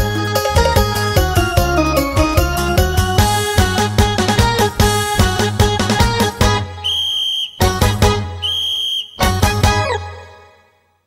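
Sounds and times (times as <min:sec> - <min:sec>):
folk-pop music: 0:00.0 - 0:10.6
high whistle-like tone: 0:06.8 - 0:07.8, 0:08.4 - 0:09.4.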